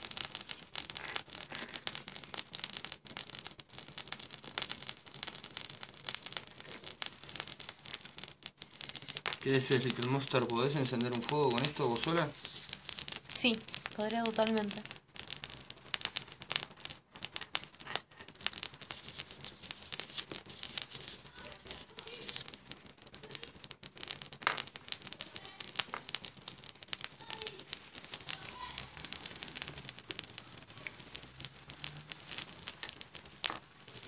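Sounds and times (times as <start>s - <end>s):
fire starters crackling: 0.0s - 34.0s.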